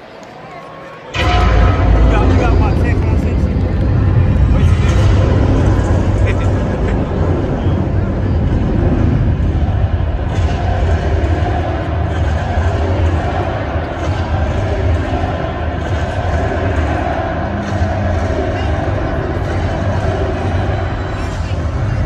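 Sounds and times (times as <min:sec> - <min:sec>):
music over arena loudspeakers: 0:00.7 - 0:22.0.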